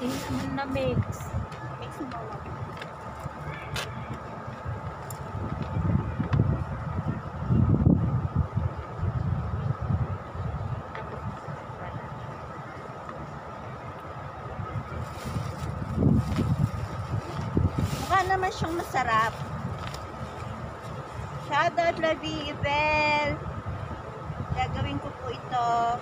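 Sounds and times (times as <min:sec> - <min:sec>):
wind rumbling on microphone: 0:00.0 - 0:26.0.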